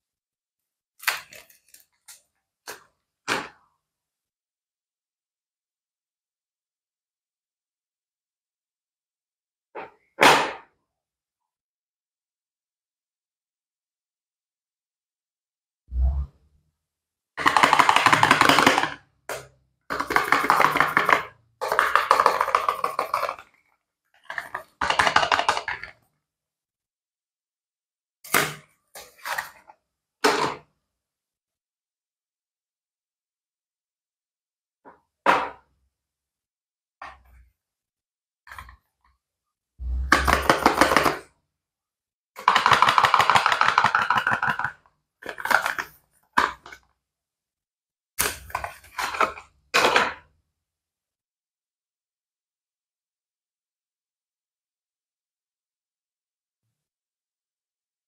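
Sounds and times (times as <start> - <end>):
short thump: 39.8 - 40.5.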